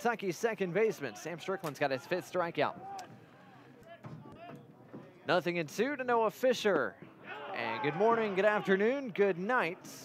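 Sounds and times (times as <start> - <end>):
ballpark ambience: 0.0 - 10.0.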